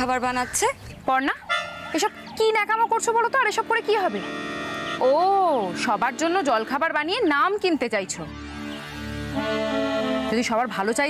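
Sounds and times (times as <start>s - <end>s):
woman speaking: 0.0s - 4.3s, 5.0s - 8.3s, 10.2s - 11.0s
background music: 1.4s - 11.0s.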